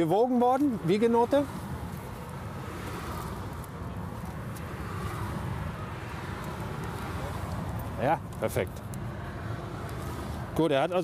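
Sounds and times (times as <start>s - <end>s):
road vehicles rumbling: 0.0s - 11.0s.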